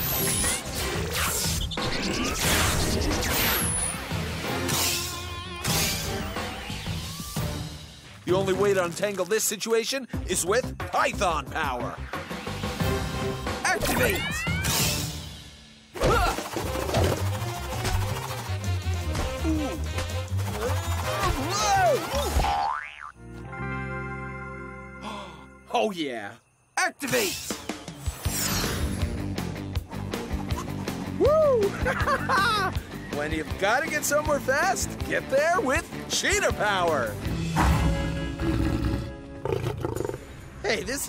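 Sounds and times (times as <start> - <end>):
background music: 0.0 - 41.0
bass-heavy music: 16.2 - 22.4, 29.0 - 39.4
springy boing sound effects: 22.4 - 23.2
cartoon lion roaring: 38.3 - 40.3.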